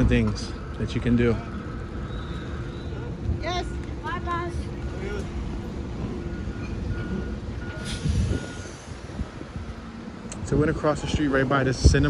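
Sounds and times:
city traffic rumble: 0.0 - 12.0
reversing beeper beeps: 5.6 - 9.2.

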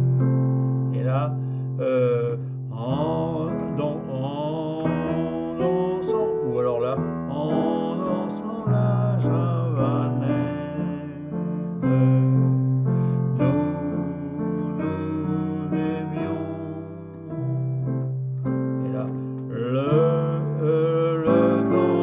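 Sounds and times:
digital piano playing chords: 0.0 - 22.0.

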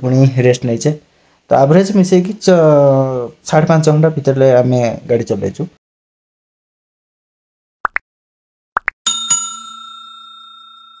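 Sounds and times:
notification bell ringing: 9.1 - 11.0.

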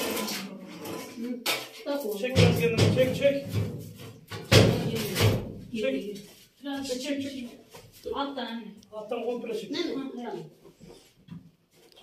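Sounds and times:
stovepipe scraping and clattering: 0.0 - 1.8.

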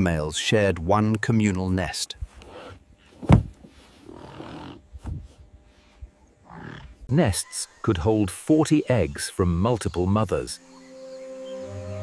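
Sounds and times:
heavy thump: 3.2 - 3.6
large birds grunting: 6.4 - 8.4.

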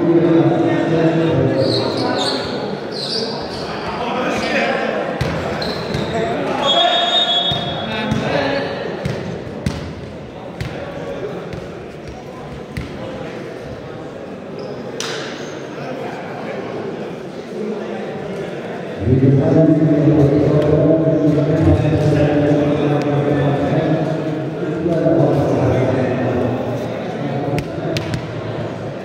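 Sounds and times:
referee's whistle blast: 6.6 - 7.8.

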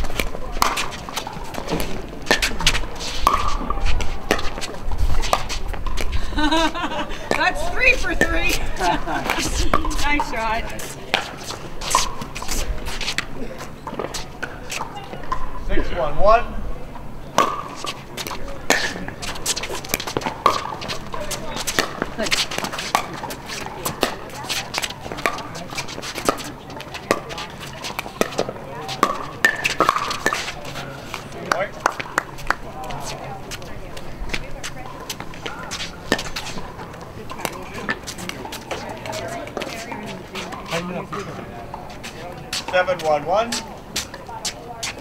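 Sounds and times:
scattered voices: 0.0 - 45.0.

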